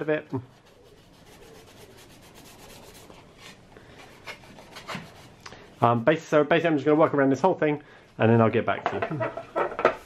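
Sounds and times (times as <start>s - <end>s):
sanding block scratching plastic: 0.5s - 3.2s, 4.1s - 5.4s.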